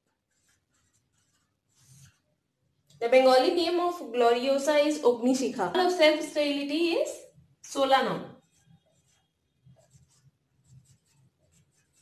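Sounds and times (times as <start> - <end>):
marker pen writing on whiteboard: 0.0 - 2.5, 7.8 - 12.0.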